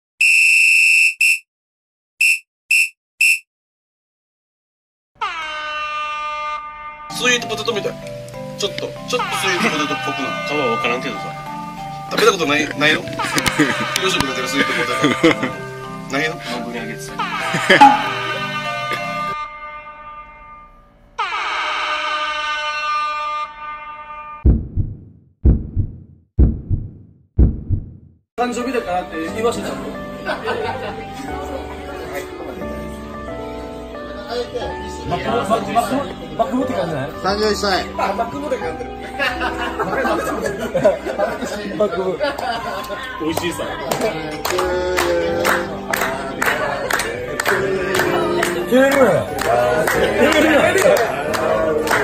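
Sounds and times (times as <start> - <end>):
electronic buzzer beeps: 0.2 - 1.4, 2.2 - 3.4, 17.8 - 18.3
held musical note: 17.8 - 18.6
horn-like stinger blast: 17.8 - 18.8
deep booming hits: 24.5 - 28.1.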